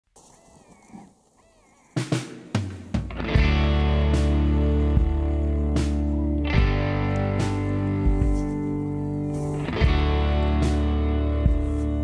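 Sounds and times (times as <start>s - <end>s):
whistled animal calls: 0.2s - 2.2s.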